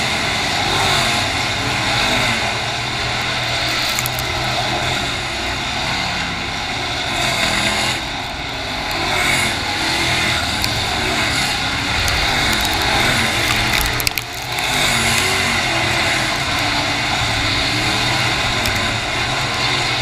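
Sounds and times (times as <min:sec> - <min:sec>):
race car engines running hard: 0:00.0 - 0:20.0.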